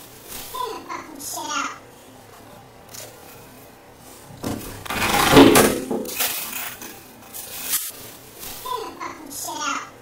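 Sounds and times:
objects scraping and clattering: 0:04.4 - 0:08.6.

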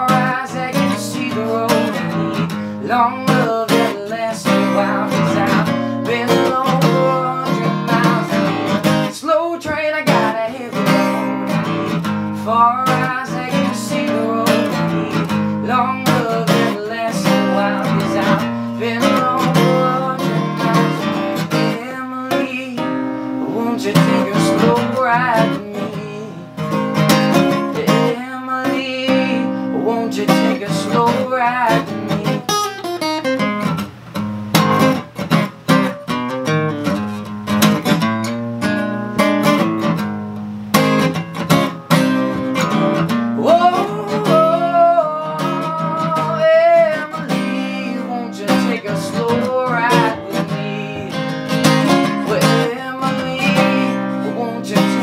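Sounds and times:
acoustic guitar strumming and picking: 0:00.0 - 0:55.0.

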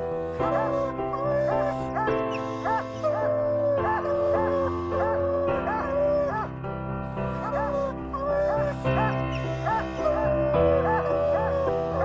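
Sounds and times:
background music with held notes: 0:00.0 - 0:12.0
hounds baying: 0:00.0 - 0:12.0.

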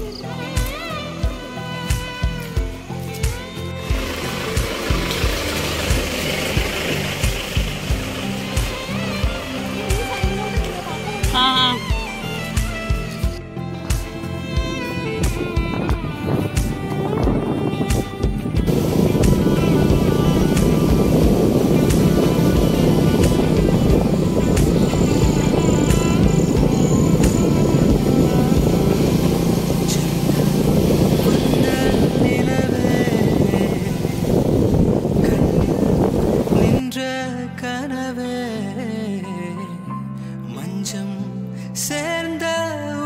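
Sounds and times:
motorcycle riding noise: 0:00.0 - 0:36.8
background music: 0:00.0 - 0:43.0.

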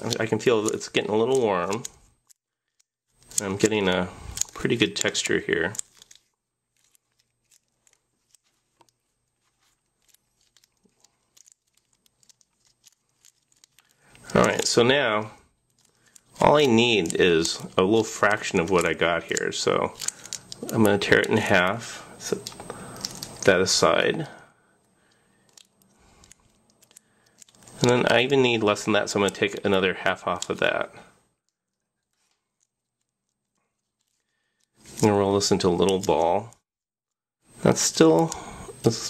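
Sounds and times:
gloved hands kneading putty: 0:00.0 - 0:24.3.

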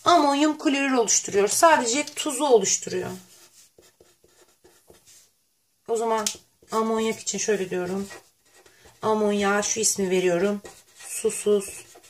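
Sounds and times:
marker pen scratching paper: 0:02.9 - 0:05.3, 0:06.1 - 0:12.0.

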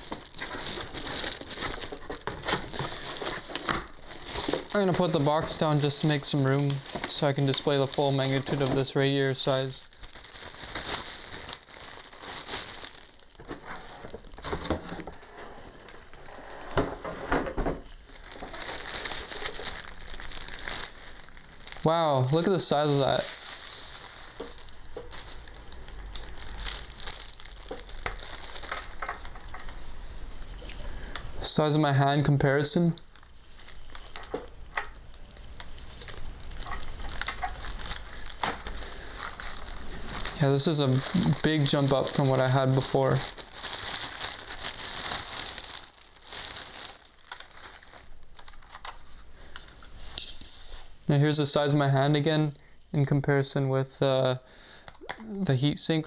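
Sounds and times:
packaging crinkling and rustling: 0:00.0 - 0:31.3, 0:32.5 - 0:50.9.

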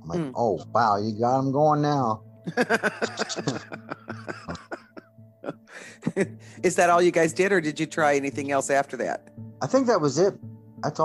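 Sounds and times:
person laughing: 0:02.5 - 0:06.4
person coughing: 0:02.9 - 0:06.1.

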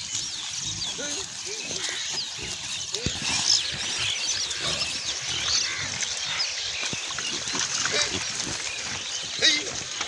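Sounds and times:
pigs grunting: 0:00.6 - 0:06.6, 0:07.2 - 0:10.0.

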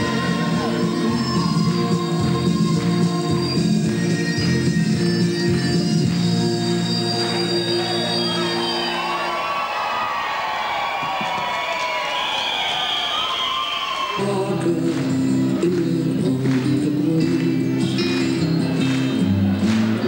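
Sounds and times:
audience cheering and shouting: 0:00.0 - 0:03.0, 0:06.7 - 0:14.8
stage music with sustained tones: 0:00.0 - 0:20.0.

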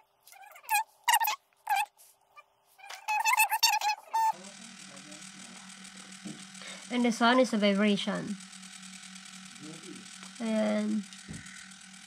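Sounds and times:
vibration motor buzzing: 0:02.8 - 0:12.0.

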